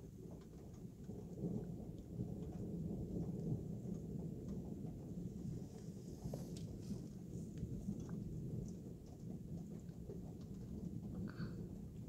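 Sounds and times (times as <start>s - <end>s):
distant rolling thunder: 0.0s - 12.0s
faint rain ticks: 0.0s - 12.0s.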